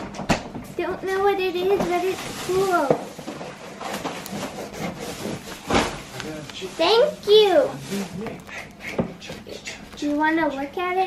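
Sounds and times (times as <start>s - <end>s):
paper rustling: 1.6s - 8.5s.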